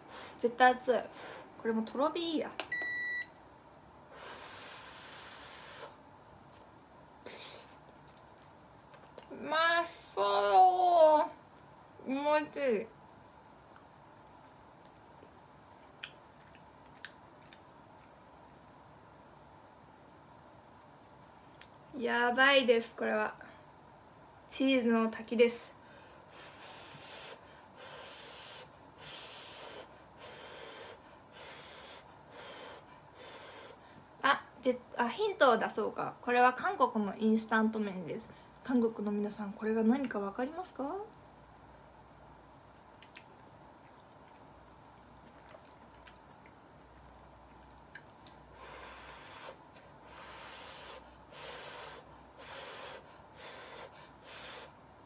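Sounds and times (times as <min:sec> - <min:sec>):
soft puffs of breath: 0:01.1 - 0:01.6, 0:04.1 - 0:06.0, 0:25.8 - 0:34.1, 0:48.5 - 0:54.9.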